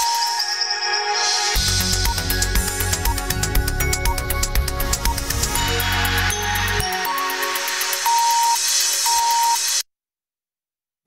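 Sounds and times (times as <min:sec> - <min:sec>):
electronic news jingle: 0:00.0 - 0:09.8.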